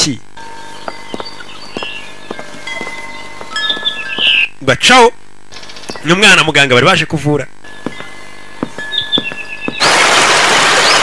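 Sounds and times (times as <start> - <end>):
wind chimes tinkling: 0.4 - 4.2, 7.6 - 9.6.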